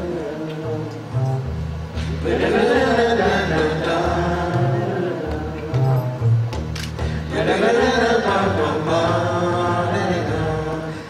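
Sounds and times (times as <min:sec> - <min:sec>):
man singing wordless melody: 0:00.0 - 0:01.5, 0:02.2 - 0:06.4, 0:07.2 - 0:11.0
plucked double bass: 0:00.0 - 0:11.0.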